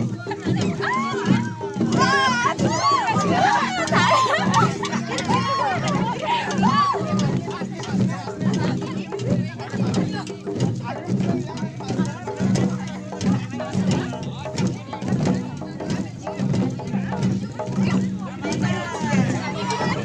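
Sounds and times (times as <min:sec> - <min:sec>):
drum beaten in quick rhythm: 0:00.0 - 0:20.0
voices: 0:00.0 - 0:20.0.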